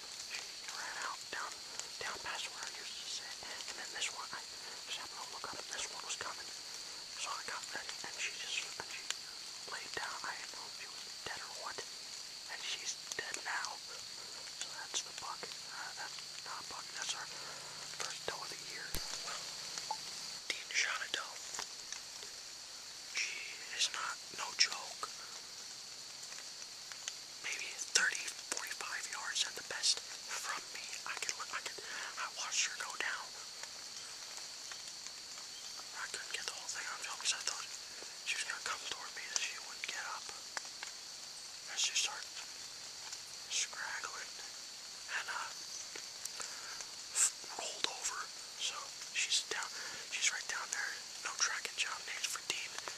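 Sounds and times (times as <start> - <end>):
steady high-pitched hiss: 0.0 - 52.9
man whispering: 0.2 - 21.6, 23.1 - 25.4, 27.4 - 34.3, 35.9 - 40.5, 41.6 - 42.5, 43.5 - 45.6, 46.3 - 52.9.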